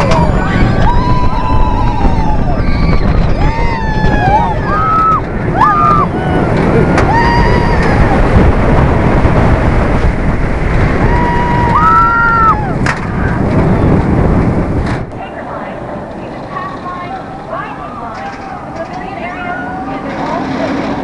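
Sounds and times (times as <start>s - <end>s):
riders screaming: 0.0s - 8.4s, 10.9s - 12.8s
wind rushing over microphone: 0.0s - 21.0s
faint voices: 15.1s - 21.0s.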